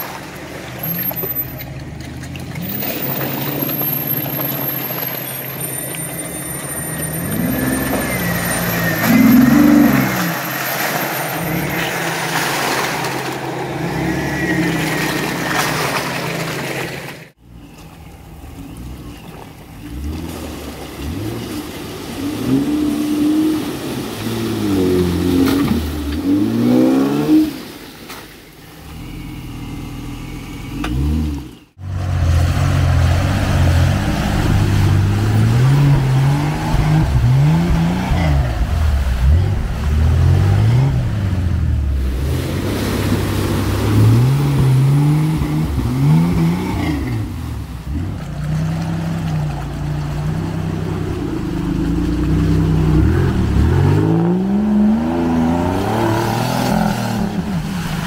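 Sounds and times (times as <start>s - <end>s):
off-road engines revving: 0.0s - 27.8s, 28.6s - 58.0s.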